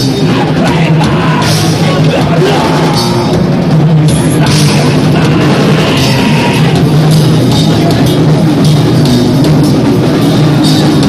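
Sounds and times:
shouted vocals: 0.0 - 3.4, 4.4 - 6.9
bass: 0.0 - 11.0
distorted electric guitars: 0.0 - 11.0
drums: 0.0 - 11.0.

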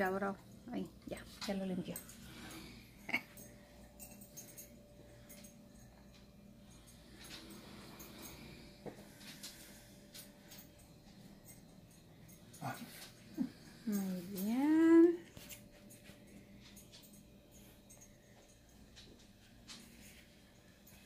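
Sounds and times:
faint steady hum: 0.0 - 21.0
dog: 12.3 - 14.5.

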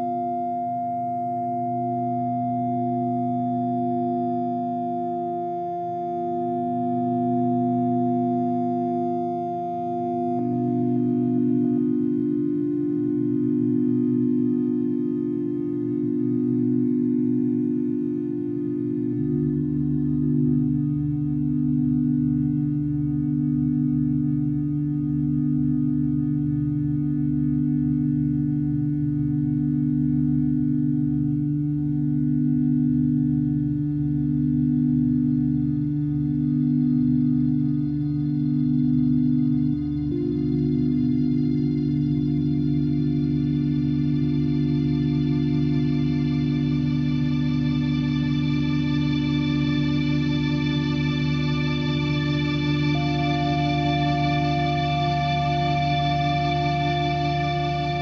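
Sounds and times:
ambient synthesizer chords: 0.0 - 58.0.

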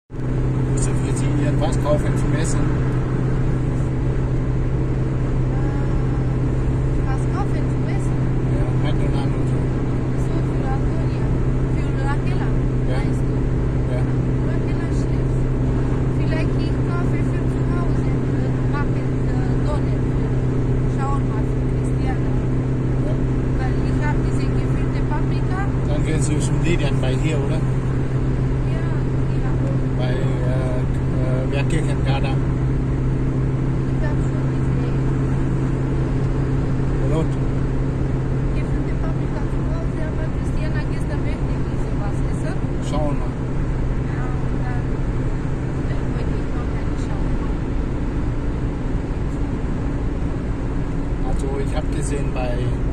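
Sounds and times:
engine and tyre road noise: 0.1 - 52.9
faint voices: 7.0 - 27.8, 28.7 - 32.4, 37.0 - 37.4.

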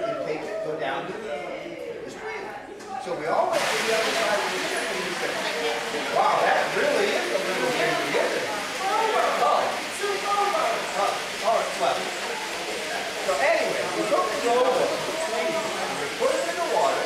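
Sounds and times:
voices talking: 0.0 - 17.0.

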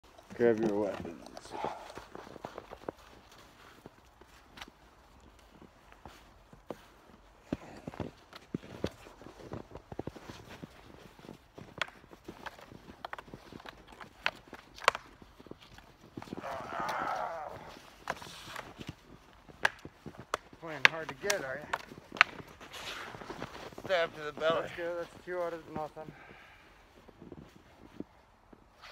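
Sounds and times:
footsteps in snow: 0.2 - 28.9
wooden sticks knocking together: 11.7 - 22.8.

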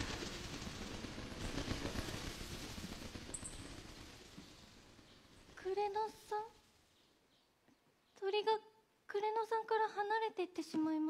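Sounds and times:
rustle of bird wings flapping: 0.0 - 6.9.

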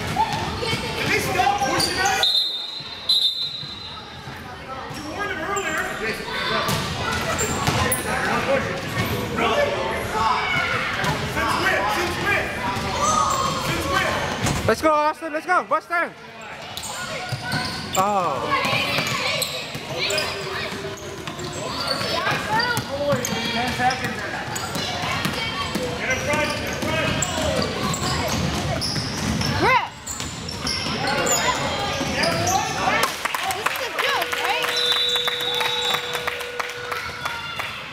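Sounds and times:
sneakers squeaking on court: 0.0 - 9.3, 16.4 - 32.9.

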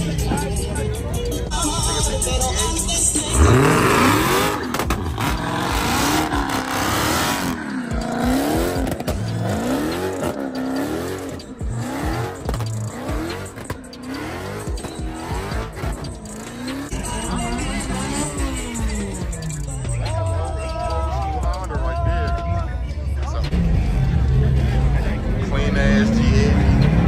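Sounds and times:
car engine revving: 0.0 - 27.0
tire squeal: 3.2 - 21.4.

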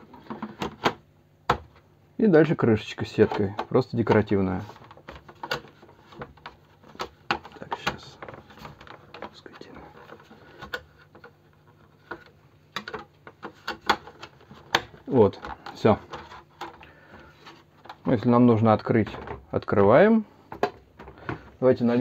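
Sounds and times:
plastic clicks and taps: 12.1 - 16.9.

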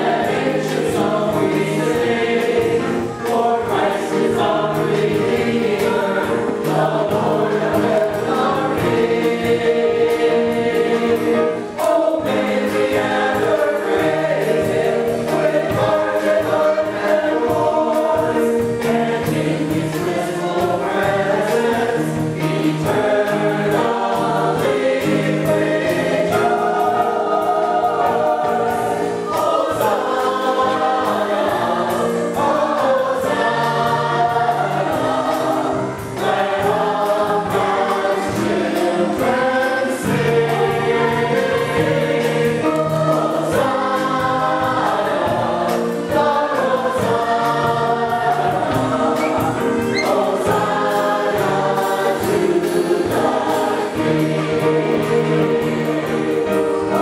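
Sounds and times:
choir singing a hymn: 0.0 - 57.0.

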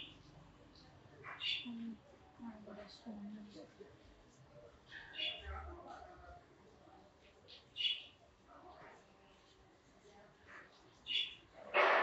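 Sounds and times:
small bird chirping: 1.2 - 2.0, 4.9 - 5.5, 7.5 - 8.2, 11.0 - 11.5.

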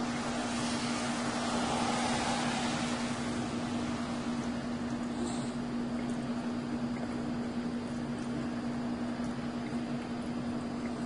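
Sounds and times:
even hiss: 0.0 - 5.7
low machine drone: 0.0 - 7.1.

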